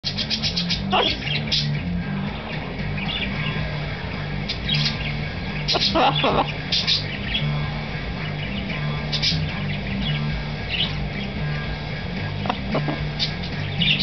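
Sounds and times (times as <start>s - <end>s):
background music with bass line: 0.0s - 14.0s
macaw chirping: 0.0s - 14.0s.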